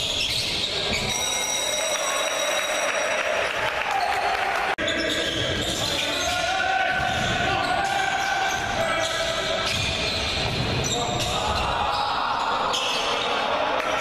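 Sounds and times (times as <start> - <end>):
voices and shouts: 1.0 - 10.1, 10.8 - 14.0
basketball bouncing on court: 5.5 - 11.7.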